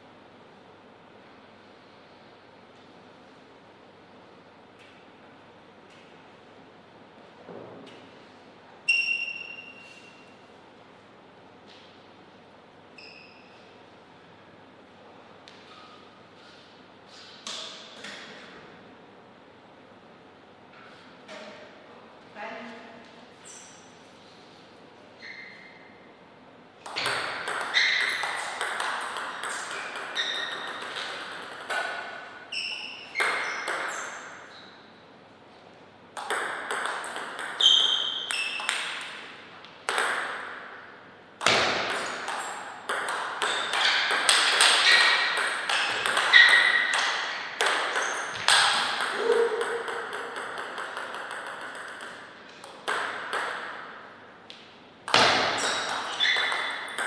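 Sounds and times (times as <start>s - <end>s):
table tennis ball clicking: 41.9s - 53.7s.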